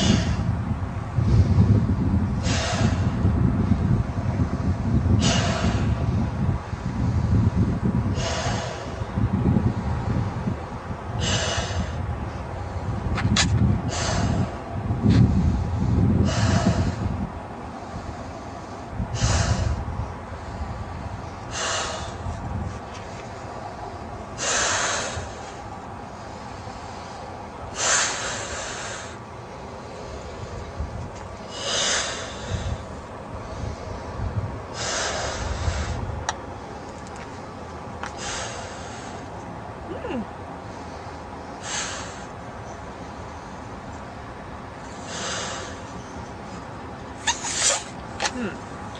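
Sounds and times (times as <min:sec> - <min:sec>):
person blowing into balloon: 0:47.2 - 0:48.5.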